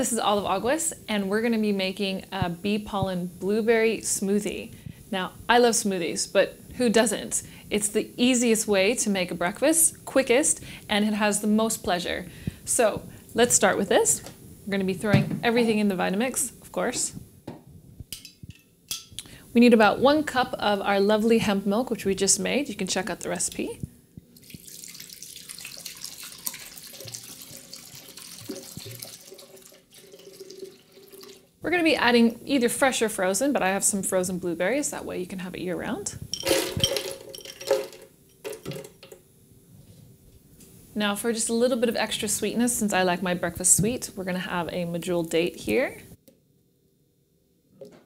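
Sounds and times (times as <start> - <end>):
frozen berries clattering into blender: 36.4 - 39.2.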